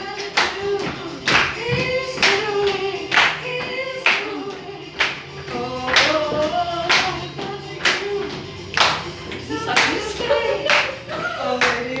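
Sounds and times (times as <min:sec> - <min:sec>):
music: 0:00.0 - 0:12.0
people clapping in time: 0:00.0 - 0:12.0
singing: 0:00.0 - 0:12.0.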